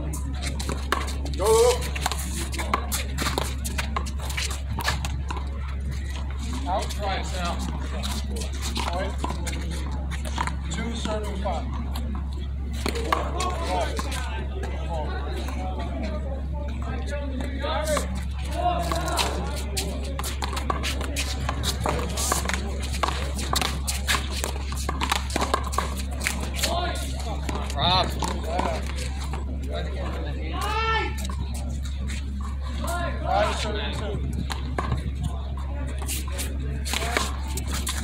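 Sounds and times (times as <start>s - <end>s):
players' voices: 0.0s - 38.0s.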